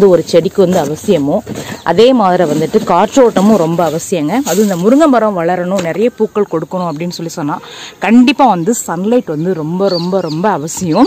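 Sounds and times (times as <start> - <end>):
person speaking: 0.0 - 11.0.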